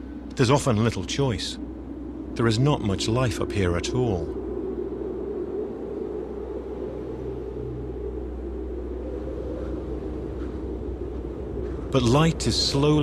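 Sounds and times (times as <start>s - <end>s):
low rumble: 0.0s - 13.0s.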